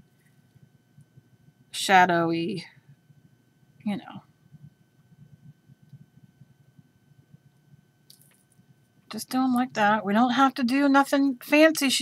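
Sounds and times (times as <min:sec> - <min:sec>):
soft hiss: 0:00.0 - 0:09.8.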